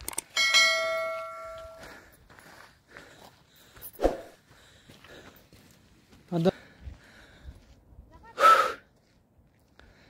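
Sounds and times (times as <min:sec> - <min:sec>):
bell-like chime: 0:00.4 - 0:01.8.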